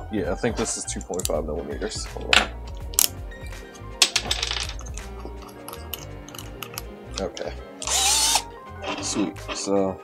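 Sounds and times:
background music: 0.0 - 10.0
metal tools clinking on wood: 4.0 - 7.6.

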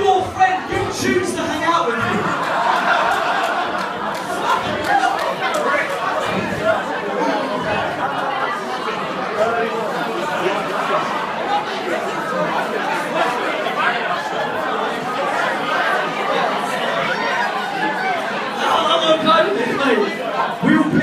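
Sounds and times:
audience chattering: 0.0 - 21.0.

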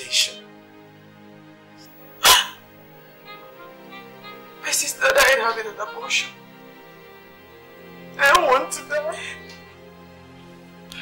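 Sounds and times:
soft sustained background music: 0.0 - 11.0
dog bark: 2.2 - 2.6.

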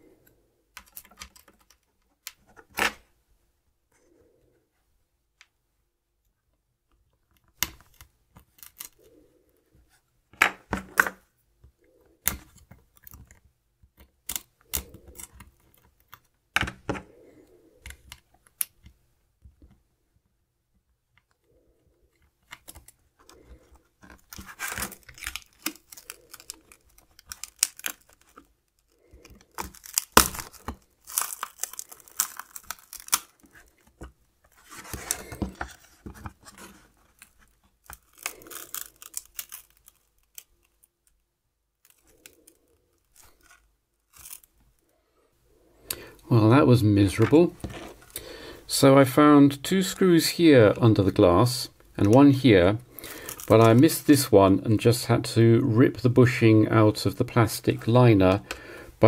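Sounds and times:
scraping cracking and tearing: 7.6 - 9.2, 21.5 - 41.2, 41.8 - 44.6, 52.9 - 54.2.

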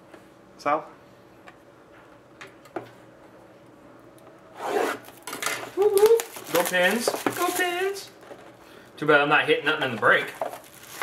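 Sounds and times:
loud rasping rub of plastic wrap: 10.6 - 11.0.

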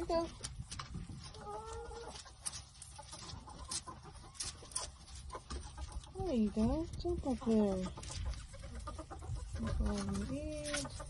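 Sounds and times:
hens clucking: 0.0 - 11.0.

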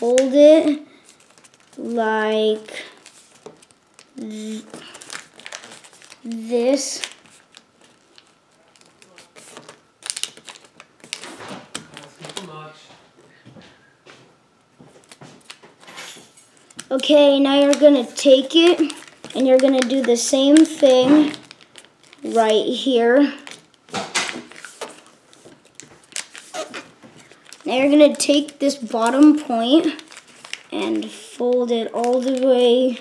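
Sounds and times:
paper crinkling: 0.0 - 12.7, 15.0 - 22.8, 23.4 - 33.0.

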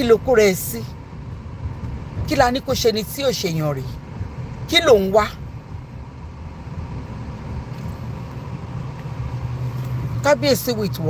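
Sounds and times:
car engine and road rumble: 0.0 - 11.0
low hum: 3.7 - 10.8.

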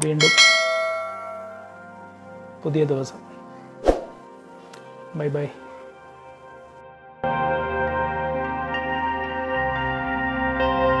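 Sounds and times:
bright bell chime: 0.2 - 1.8.

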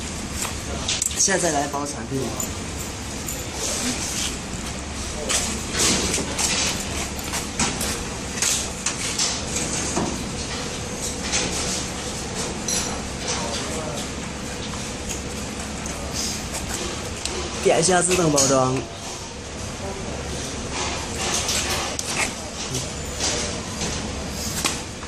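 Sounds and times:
faint machine hum: 0.0 - 25.0.

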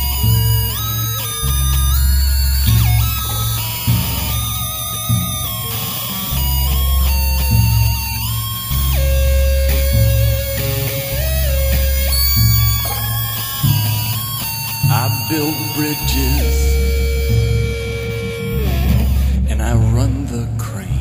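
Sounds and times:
bass line: 0.0 - 21.0
guitar: 0.0 - 21.0.

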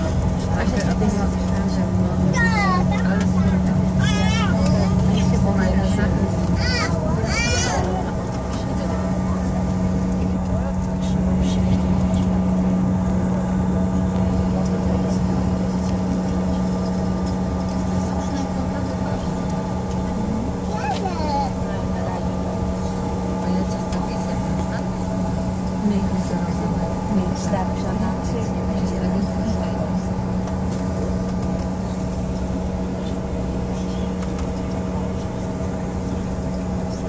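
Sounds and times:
airliner engines droning in cabin: 0.0 - 37.0.

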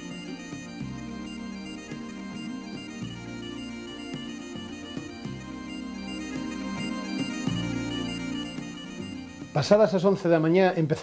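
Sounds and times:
bagpipe music with drone: 0.0 - 10.9.

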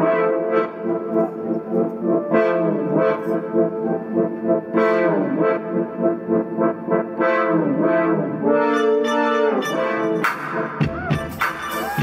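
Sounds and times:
synthesizer brass-like chords: 0.0 - 12.0.

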